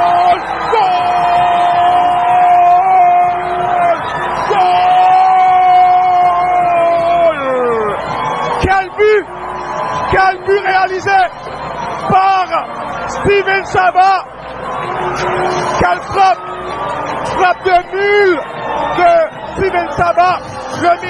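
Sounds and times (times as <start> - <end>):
commentator shouting: 0.0 - 8.0, 8.6 - 9.3, 10.0 - 11.4, 12.0 - 14.3, 15.7 - 16.4, 17.3 - 21.0
crowd noise: 0.0 - 21.0.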